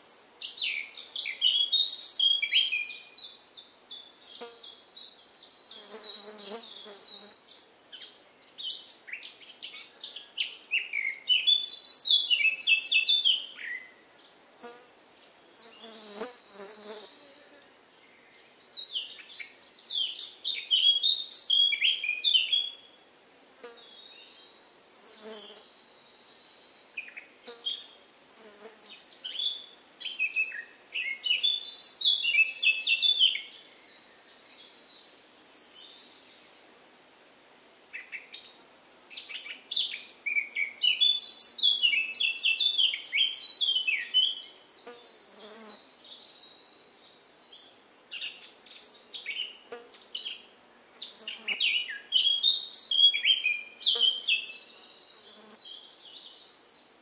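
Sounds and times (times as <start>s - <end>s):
songbirds singing: 0.0s - 23.0s, 23.7s - 36.4s, 37.9s - 57.0s.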